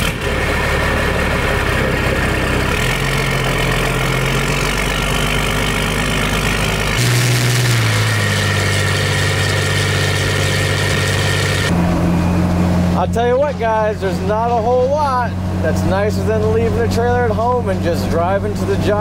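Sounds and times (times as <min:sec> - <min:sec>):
truck engine: 0:00.0 - 0:19.0.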